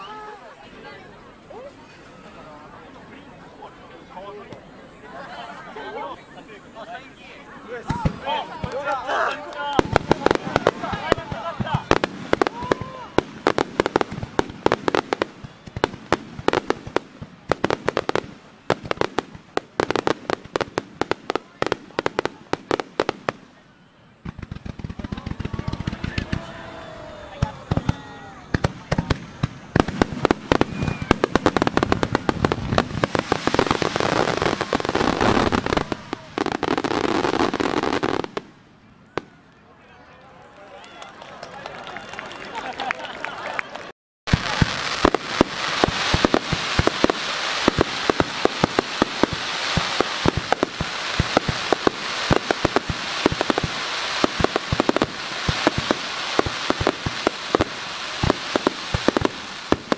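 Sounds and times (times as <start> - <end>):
fireworks bursts and crackles: 5.9 - 39.6, 40.8 - 59.9.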